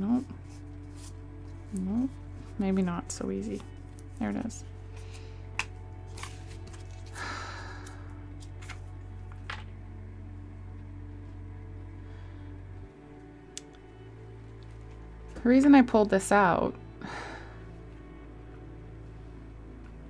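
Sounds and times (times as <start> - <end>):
quiet background music: 0.0 - 20.0.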